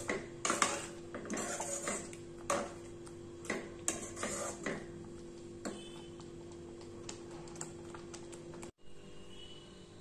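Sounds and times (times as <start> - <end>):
gravy simmering with small pops: 4.7 - 8.8.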